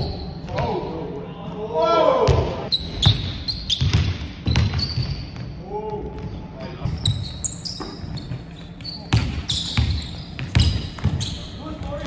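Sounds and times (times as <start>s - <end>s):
sneaker squeaks: 2.7s - 12.0s
basketball bouncing on wooden floor: 2.9s - 5.5s, 6.2s - 11.4s.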